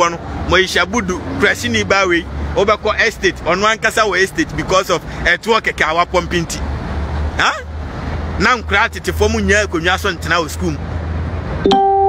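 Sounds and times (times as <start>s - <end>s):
man talking: 0.0s - 6.7s, 7.4s - 7.7s, 8.4s - 10.9s
road traffic rumble: 0.0s - 11.7s.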